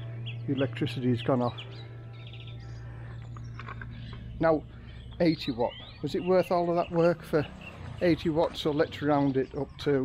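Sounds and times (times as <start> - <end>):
steady low hum: 0.0 - 6.6
birds chirping: 0.0 - 10.0.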